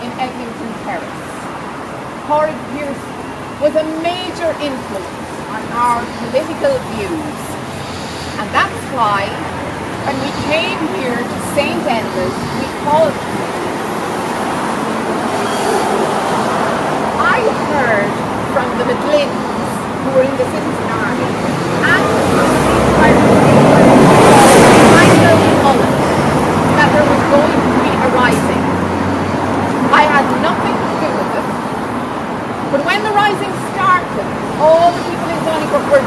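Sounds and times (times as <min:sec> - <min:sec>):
woman's voice: 0:00.0 - 0:01.4, 0:02.3 - 0:07.6, 0:08.4 - 0:09.4, 0:10.0 - 0:13.2, 0:17.2 - 0:28.7, 0:29.9 - 0:31.2, 0:32.7 - 0:36.0
street traffic noise: 0:00.0 - 0:36.0
passing vehicle rush: 0:00.8 - 0:36.0.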